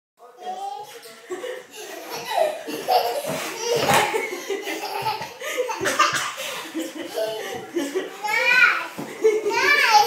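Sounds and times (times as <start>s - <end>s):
woman and child laughing: 1.9s - 8.2s.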